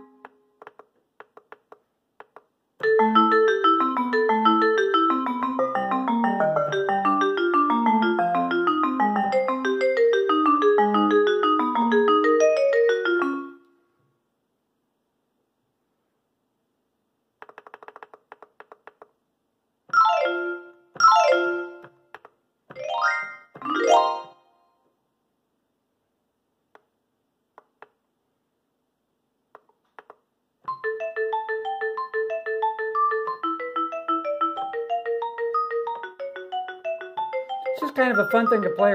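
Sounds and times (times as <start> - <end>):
keyboard arpeggio: 2.8 - 13.6, 20.0 - 21.9, 30.7 - 38.9.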